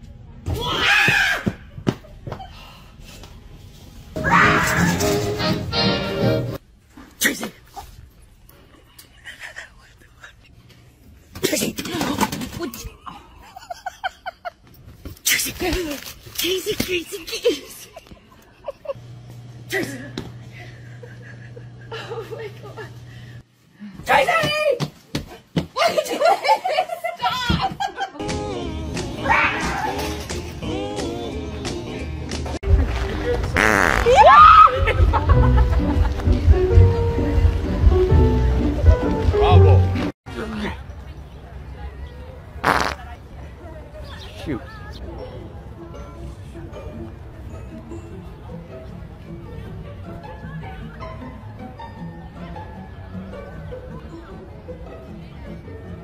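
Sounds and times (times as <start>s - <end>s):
buzzy fart noise: 33.5s - 34.3s, 42.6s - 43.1s.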